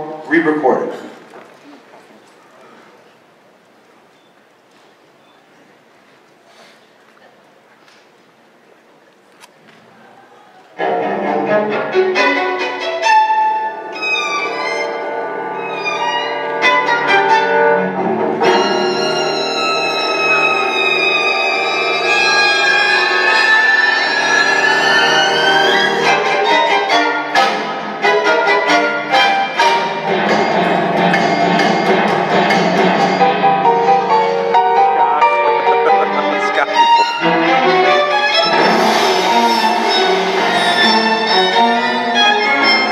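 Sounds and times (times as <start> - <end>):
orchestral strings over speakers: 10.8 - 42.9.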